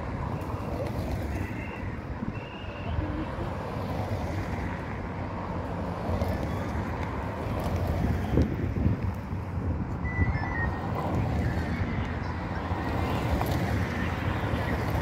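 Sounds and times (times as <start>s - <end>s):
cars driving past: 0.0s - 15.0s
tyres on brick paving: 0.0s - 15.0s
wind buffeting microphone: 6.0s - 15.0s.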